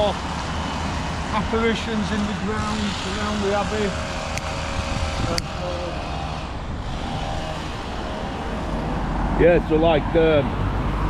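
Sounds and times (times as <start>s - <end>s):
road traffic passing: 0.0s - 11.0s
sharp clicks: 4.3s - 4.6s.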